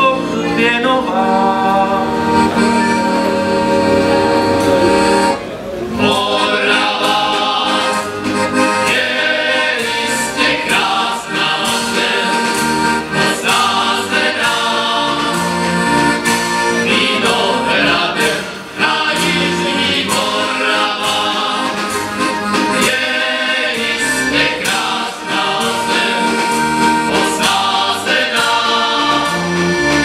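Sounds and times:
accordion chords: 0:00.0 - 0:30.0
men singing together: 0:06.0 - 0:08.1, 0:08.7 - 0:15.9, 0:16.8 - 0:22.0, 0:22.7 - 0:29.9.

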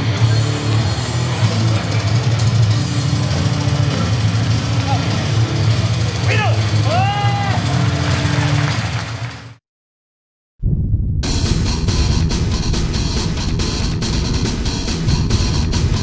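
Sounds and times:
heavy rock music: 0:00.0 - 0:08.6, 0:11.2 - 0:16.0
arena crowd noise: 0:00.0 - 0:09.6
person shouting: 0:06.3 - 0:07.6.

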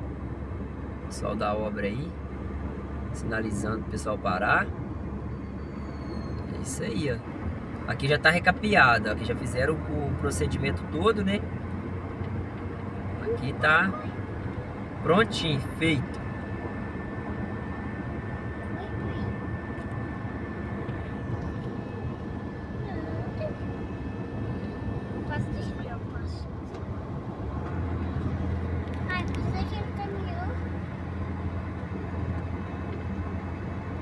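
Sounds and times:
car engine and tyre hum: 0:00.0 - 0:34.0.

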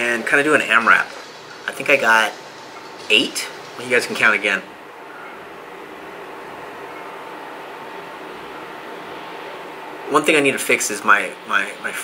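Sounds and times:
faint steady hum: 0:00.0 - 0:12.0
room noise hiss: 0:00.0 - 0:12.0.

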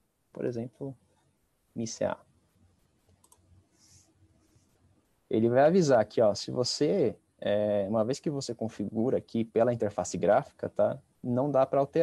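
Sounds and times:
computer mouse click: 0:03.0 - 0:03.6.

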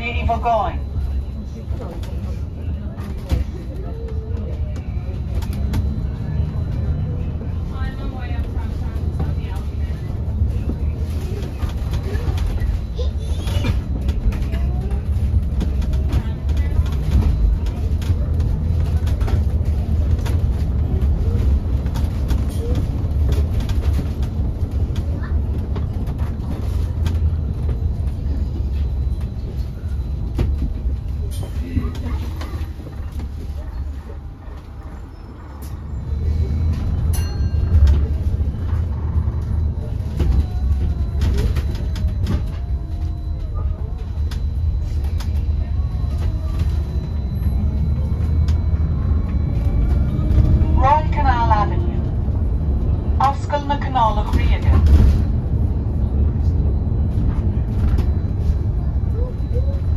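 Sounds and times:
bus road rumble: 0:00.0 - 0:59.9
knocks and rattles of bus body: 0:01.0 - 0:59.9.

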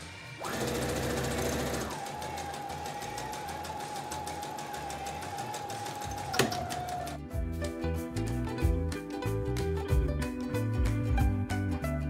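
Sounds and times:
sewing machine stitching: 0:00.4 - 0:07.2.

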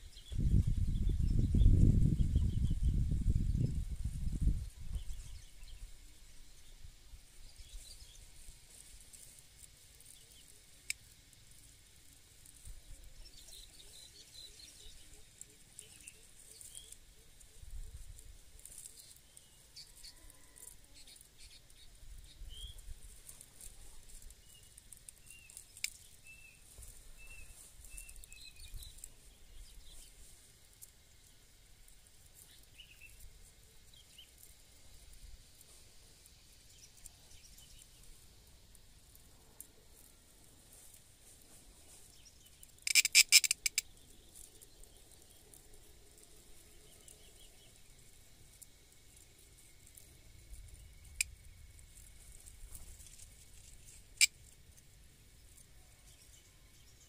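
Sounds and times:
faint bird chirps: 0:00.0 - 0:09.3, 0:12.5 - 0:30.4, 0:41.8 - 0:48.4
cicada buzzing: 0:00.1 - 0:55.7.

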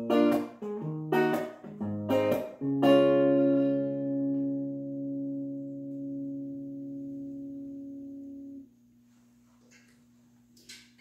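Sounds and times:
electric guitar chord ringing: 0:00.0 - 0:08.7
faint steady hum: 0:03.7 - 0:11.0.

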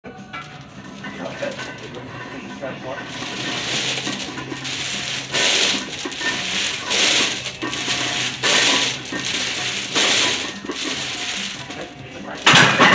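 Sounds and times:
steel chains clanking and jingling: 0:00.4 - 0:02.0, 0:03.0 - 0:12.9.

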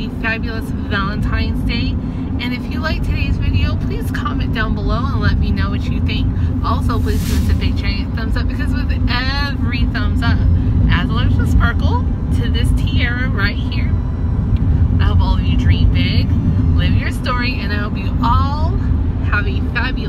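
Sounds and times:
woman talking: 0:00.0 - 0:14.0, 0:14.9 - 0:20.0
car interior rumble: 0:00.0 - 0:20.0.

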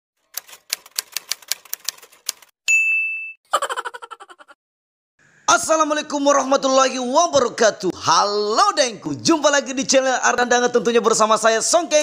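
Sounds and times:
typewriter key clacks: 0:00.3 - 0:02.5.

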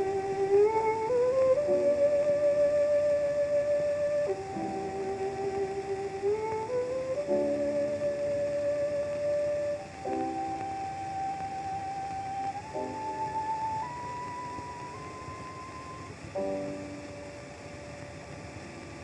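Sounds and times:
violin slow melody: 0:00.0 - 0:18.9
old recording hiss: 0:00.0 - 0:19.0
soft piano chords: 0:00.0 - 0:19.0.

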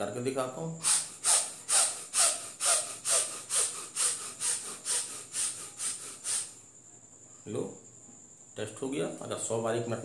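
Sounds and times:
man breathing fast and forcefully: 0:00.8 - 0:06.6.

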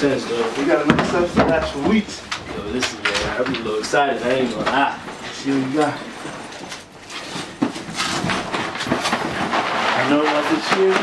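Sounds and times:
cardboard boxes clattering: 0:00.0 - 0:11.0.

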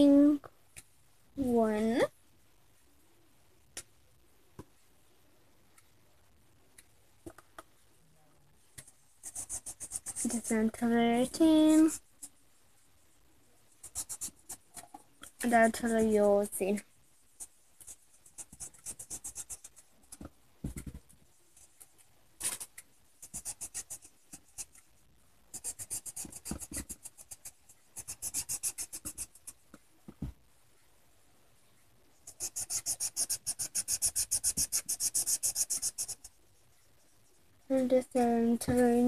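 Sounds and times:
person speaking: 0:01.4 - 0:02.1, 0:09.3 - 0:12.0, 0:15.2 - 0:16.9, 0:37.7 - 0:39.0
felt-tip pen scribbling on paper: 0:09.2 - 0:12.1, 0:13.8 - 0:14.7, 0:17.4 - 0:20.2, 0:23.2 - 0:24.8, 0:25.5 - 0:29.6, 0:32.2 - 0:36.8.

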